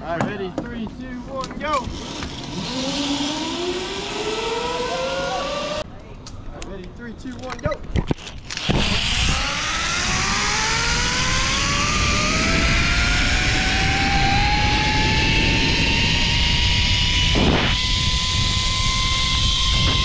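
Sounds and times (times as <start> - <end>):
pulley wheels whining on cable: 1.8 - 5.8, 8.2 - 20.0
wind rushing on microphone: 8.6 - 20.0.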